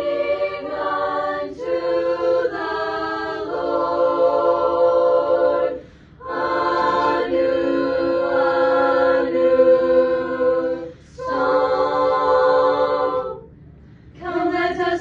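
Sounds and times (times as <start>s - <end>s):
choir singing a cappella: 0.0s - 13.5s, 14.2s - 15.0s.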